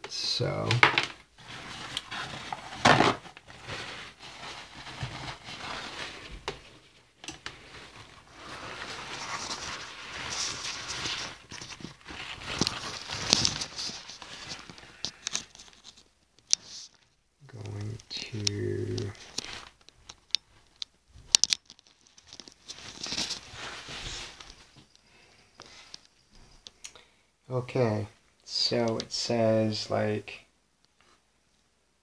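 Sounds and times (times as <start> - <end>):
handling rustling and crinkling: 0.1 - 26.8.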